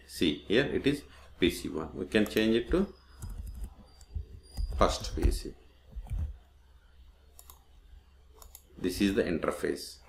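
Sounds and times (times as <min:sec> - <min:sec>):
low steady hum: 0:00.0 - 0:10.0
keyboard and mouse clicks: 0:03.2 - 0:06.4, 0:07.3 - 0:07.7, 0:08.4 - 0:08.7.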